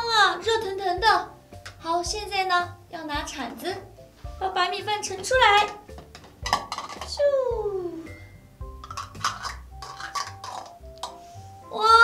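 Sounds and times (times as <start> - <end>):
toy spatula scraping a toy pot: 8.8 - 11.2.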